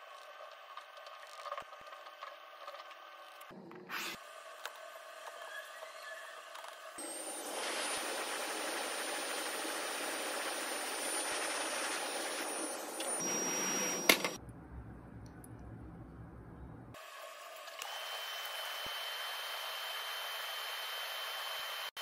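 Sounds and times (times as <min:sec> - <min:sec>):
hot-air blower with fan whine: 0:07.0 - 0:14.4, 0:17.0 - 0:22.0.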